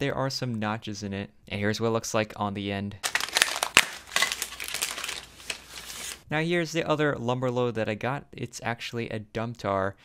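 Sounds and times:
plastic bag crinkling: 3.0s - 6.2s.

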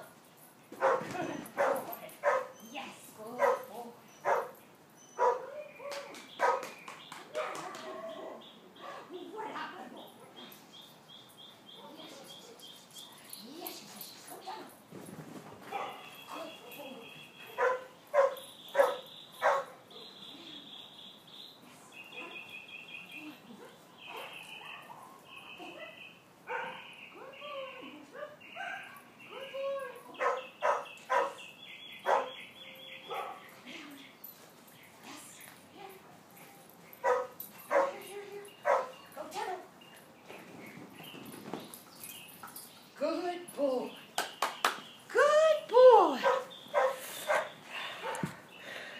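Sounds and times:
dog barking: 0.8s - 2.5s, 3.4s - 4.5s, 5.2s - 5.6s, 6.4s - 6.7s, 7.4s - 8.2s, 15.7s - 16.1s, 17.5s - 20.1s, 23.6s - 26.9s, 30.2s - 31.4s, 32.0s - 32.4s, 33.0s - 33.5s, 37.0s - 38.0s, 38.6s - 39.0s, 46.2s - 48.3s.

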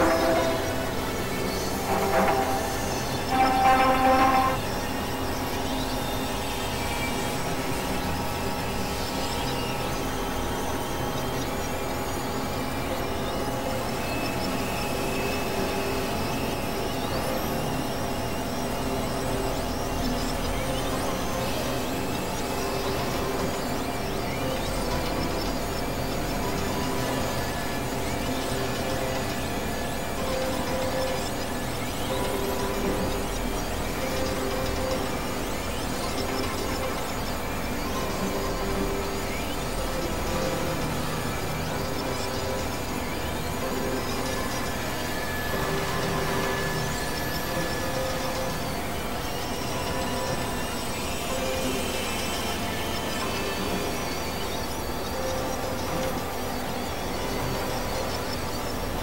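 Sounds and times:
electronic drone music: 0.0s - 59.0s.

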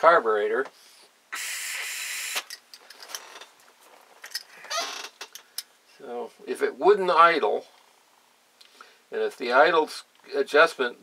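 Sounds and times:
short hiss: 0.8s - 2.5s.

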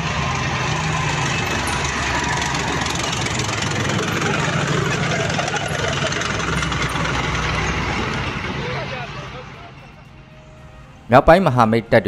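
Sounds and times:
tracked vehicle engine: 0.0s - 11.6s
track rattle: 0.0s - 11.7s.

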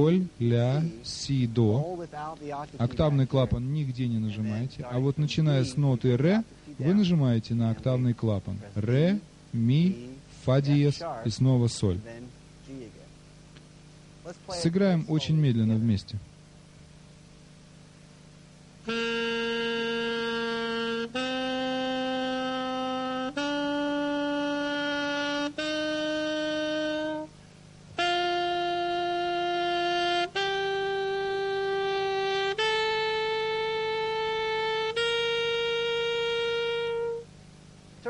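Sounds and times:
alto saxophone playing a scale: 18.8s - 37.6s.

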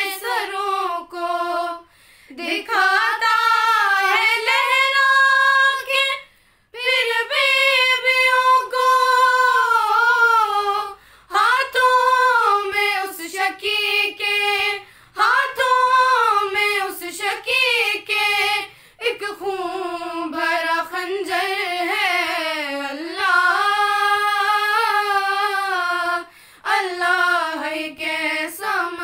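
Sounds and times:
women singing in unison: 0.0s - 29.0s.

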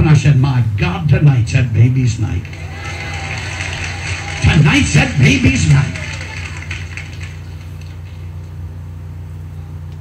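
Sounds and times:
low hum with hiss: 0.0s - 10.0s.

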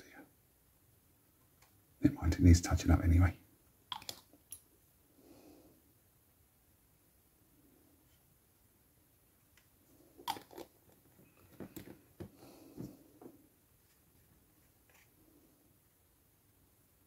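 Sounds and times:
small plastic clicks and taps: 3.9s - 4.3s.

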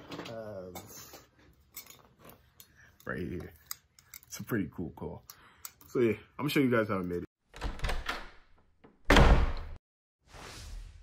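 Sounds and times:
swish: 10.2s - 11.0s.

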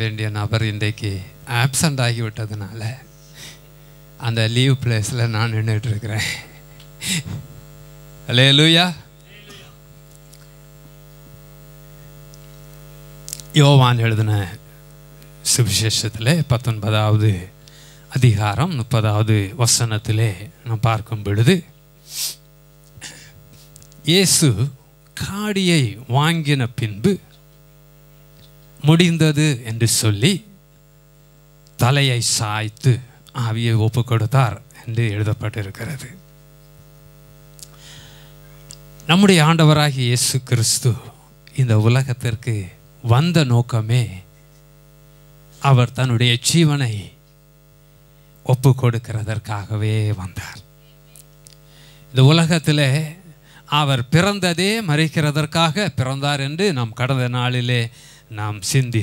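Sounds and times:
person speaking: 0.0s - 3.6s, 4.2s - 7.4s, 8.2s - 9.8s, 13.3s - 14.6s, 15.4s - 22.4s, 31.8s - 36.2s, 38.5s - 44.3s, 45.6s - 47.2s, 48.4s - 51.2s, 52.1s - 59.0s
electrical mains hum: 0.0s - 59.0s
man's voice: 4.2s - 7.4s, 8.3s - 9.8s, 13.5s - 14.6s, 15.5s - 17.5s.

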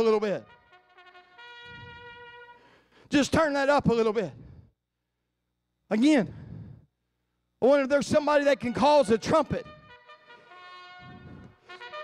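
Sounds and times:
faint trumpet notes: 0.0s - 2.8s, 8.7s - 12.0s.

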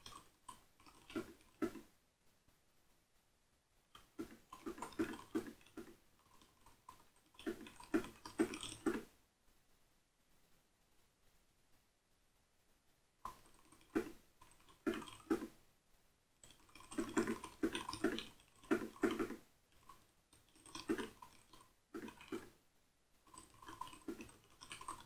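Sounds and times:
computer keyboard typing: 23.3s - 25.0s.

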